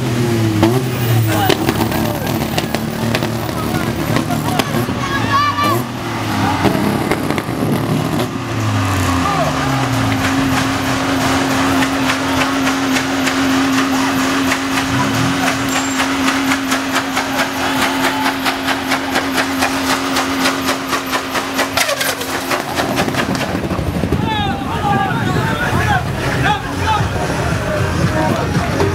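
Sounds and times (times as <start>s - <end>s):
car engine revving: 0.0s - 28.9s
tyres spinning in burnout: 0.0s - 28.9s.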